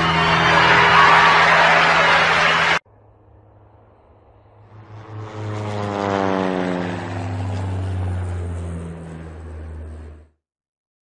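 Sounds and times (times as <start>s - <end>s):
engine passing by: 0.0s - 10.4s.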